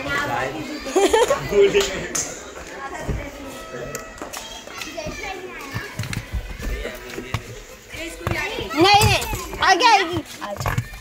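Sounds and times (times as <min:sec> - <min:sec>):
young children talking: 0:00.0 - 0:11.0.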